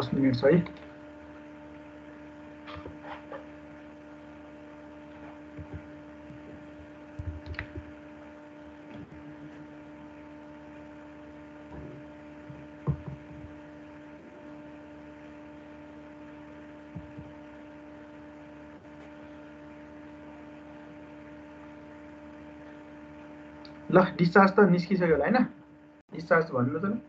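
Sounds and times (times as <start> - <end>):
steady electrical hum: 0.0 - 27.0.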